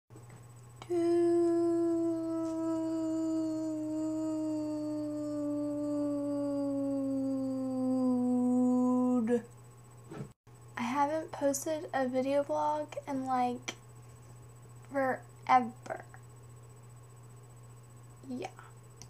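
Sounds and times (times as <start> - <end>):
woman humming a long note: 0.8 - 9.4.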